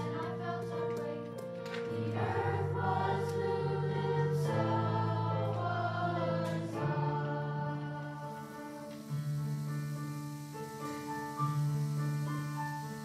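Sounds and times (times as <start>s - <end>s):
choir singing in harmony: 0.0s - 13.0s.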